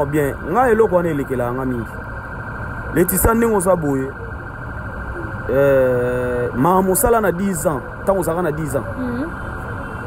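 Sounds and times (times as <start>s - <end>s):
man speaking: 5.4s - 9.0s.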